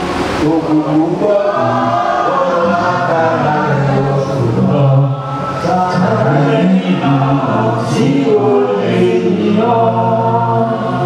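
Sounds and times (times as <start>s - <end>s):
church choir singing: 0.0s - 11.0s.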